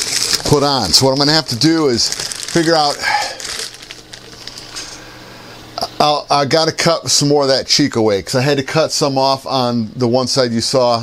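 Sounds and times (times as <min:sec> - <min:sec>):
steady low hum: 0:00.0 - 0:11.0
man talking: 0:00.4 - 0:03.4, 0:05.8 - 0:11.0.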